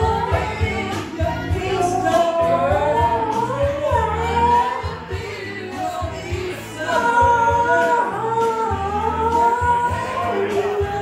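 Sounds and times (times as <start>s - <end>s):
backing track with steady beat: 0.0s - 11.0s
woman singing karaoke: 0.0s - 11.0s.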